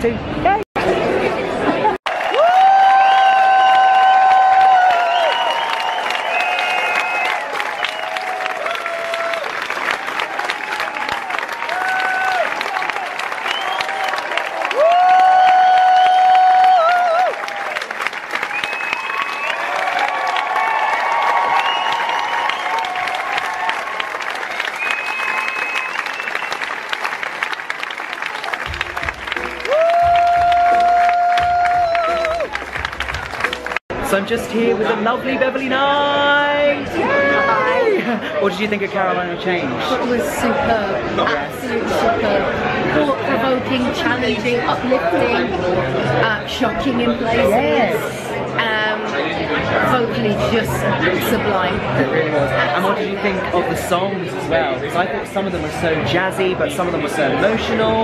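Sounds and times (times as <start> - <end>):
audience applauding: 2.0 - 33.8
musical curtain call music: 18.0 - 33.8.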